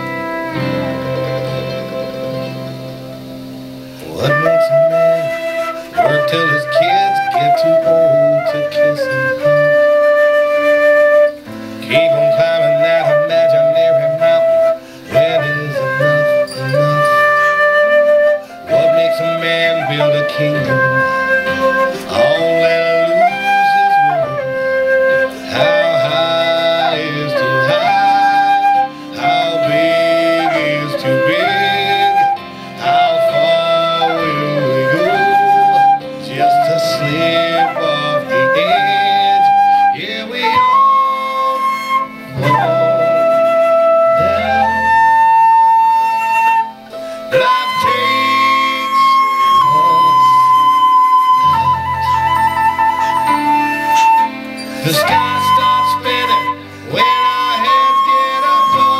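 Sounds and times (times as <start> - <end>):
band accompaniment: 0.0 - 58.9
flute playing slow melody: 0.0 - 58.9.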